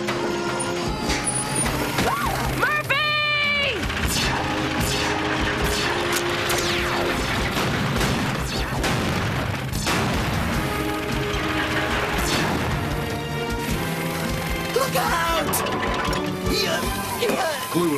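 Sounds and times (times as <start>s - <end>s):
driving background music: 0.0s - 17.9s
crash and impact effects: 3.8s - 13.9s.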